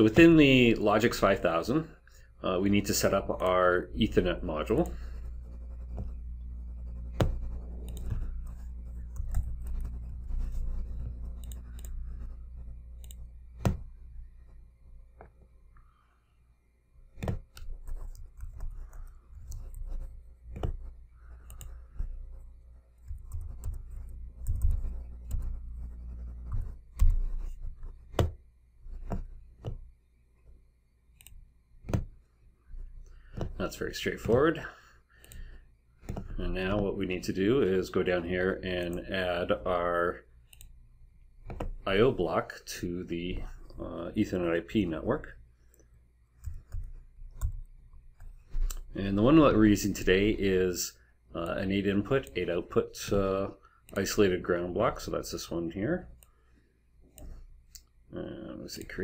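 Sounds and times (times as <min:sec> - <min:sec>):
low hum: 0:02.1 - 0:56.4
computer keys and mouse clicks: 0:06.8 - 0:14.0, 0:17.1 - 0:30.0, 0:31.1 - 0:32.2, 0:35.2 - 0:36.8, 0:40.5 - 0:40.8, 0:41.4 - 0:41.8, 0:45.7 - 0:48.9.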